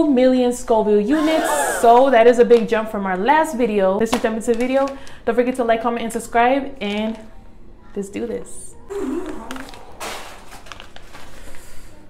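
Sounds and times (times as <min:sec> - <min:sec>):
foil pouch crinkling: 0:09.8 - 0:11.7.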